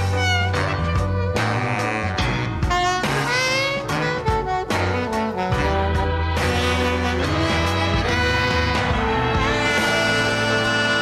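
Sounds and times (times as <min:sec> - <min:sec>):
saxophone playing jazz phrases: 0:00.0 - 0:11.0
sustained bass line: 0:00.0 - 0:11.0.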